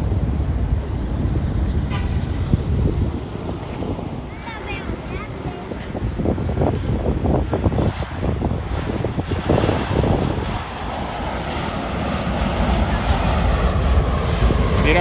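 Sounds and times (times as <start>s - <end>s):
jet engines rumbling: 0.0s - 15.0s
wind buffeting microphone: 0.0s - 15.0s.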